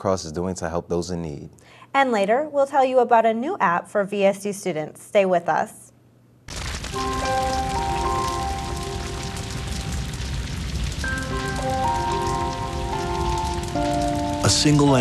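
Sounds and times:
wildfire crackling: 6.5s - 15.0s
slow music of held chords: 7.0s - 15.0s.

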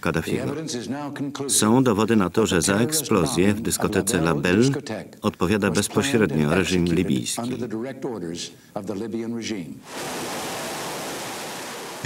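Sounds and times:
man's voice: 0.0s - 9.8s.

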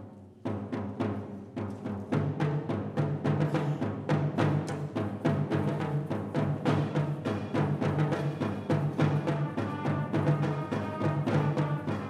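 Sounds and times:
percussion drum groove: 0.0s - 12.0s
concert band playing: 9.1s - 12.0s.

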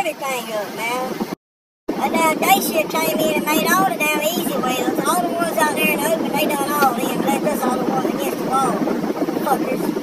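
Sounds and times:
constant low hum: 0.0s - 10.0s
man talking: 2.0s - 8.8s.

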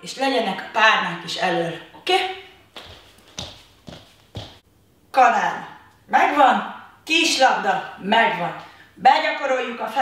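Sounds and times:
bare footsteps on hard floor: 2.7s - 4.6s.

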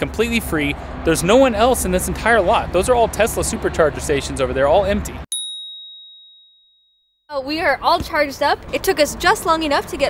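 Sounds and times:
bright ding: 5.3s - 6.6s.

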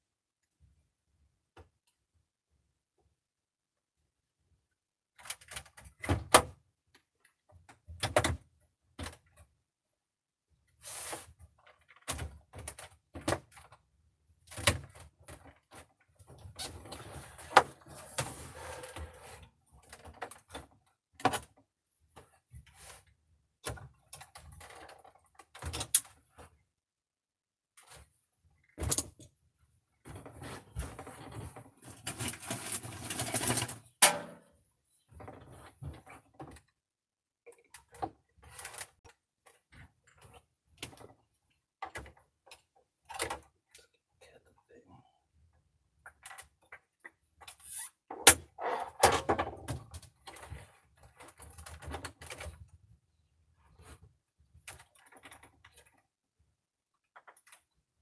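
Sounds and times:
plastic parts rattling and rustling: 23.6s - 26.6s, 30.0s - 34.5s, 37.5s - 43.8s, 46.0s - 52.8s, 53.7s - 56.1s.

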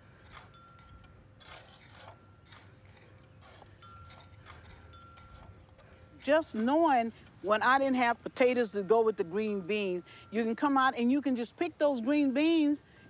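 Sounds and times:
hoe chopping soil: 0.0s - 7.2s.

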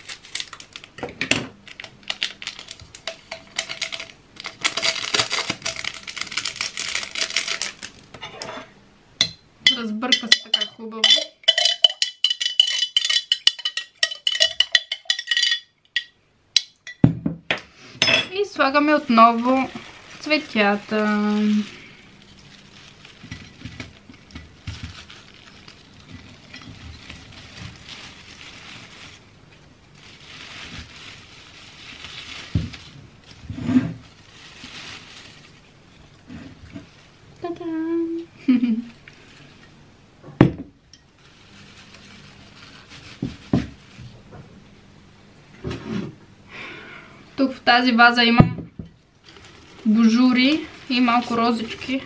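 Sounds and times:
rustling of rose stems and leaves: 0.0s - 1.0s, 1.6s - 8.1s, 18.3s - 39.7s, 41.0s - 44.3s, 47.5s - 52.0s
knocks and clinks against glass vase: 9.2s - 17.4s.

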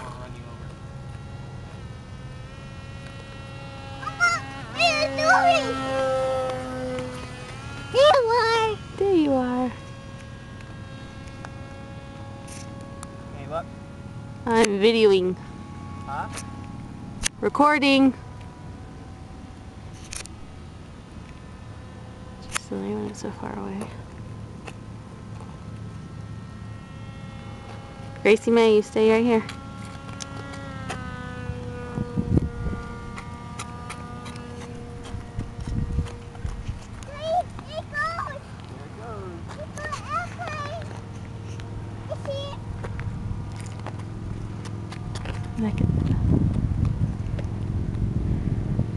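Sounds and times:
model airplane motor whining: 0.0s - 48.9s
wind rumbling on microphone: 31.4s - 37.0s, 42.6s - 48.9s.

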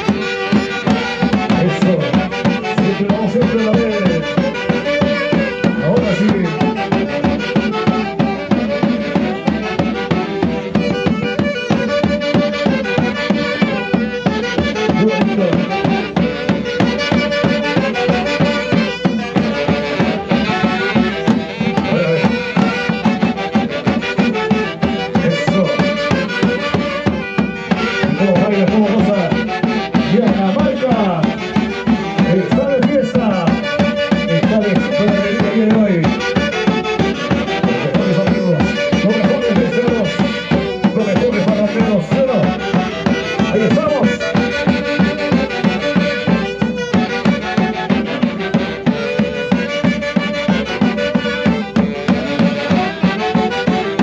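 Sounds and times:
saxophones playing melody: 0.0s - 54.0s
steady drumbeat: 0.0s - 54.0s.

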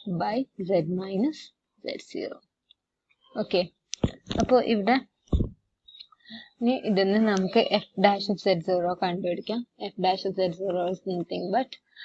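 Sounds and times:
woman speaking: 0.0s - 2.5s, 3.3s - 5.1s, 6.6s - 11.8s.

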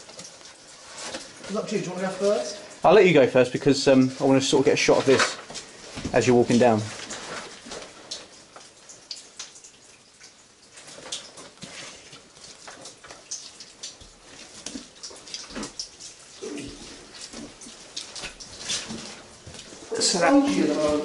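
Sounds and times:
water dripping and trickling: 0.0s - 21.0s.

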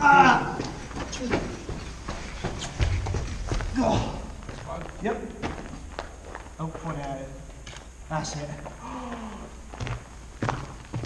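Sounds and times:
footsteps on gritty concrete: 0.5s - 7.9s, 8.6s - 11.0s.

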